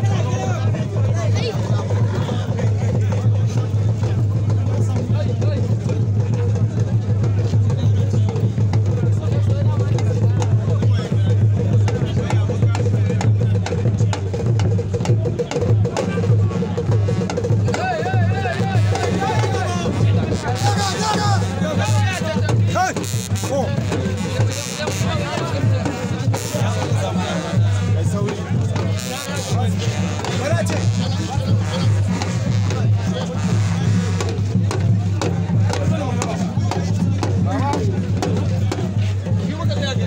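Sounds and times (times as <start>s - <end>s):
drumming with steady beat: 0.0s - 40.0s
loud crowd chatter: 0.0s - 40.0s.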